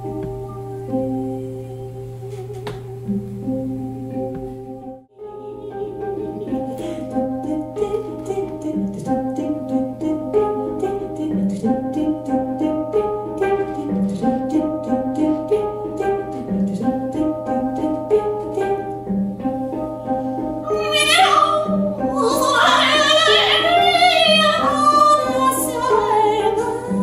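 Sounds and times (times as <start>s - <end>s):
handpan melody: 0.0s - 27.0s.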